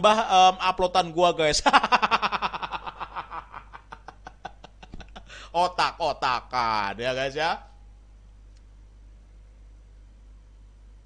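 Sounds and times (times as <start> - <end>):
man laughing: 1.6 - 6.2.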